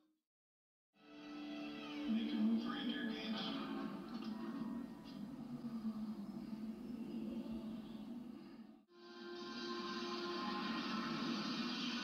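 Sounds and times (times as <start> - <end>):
film soundtrack music: 1.0 - 7.7, 8.9 - 12.0.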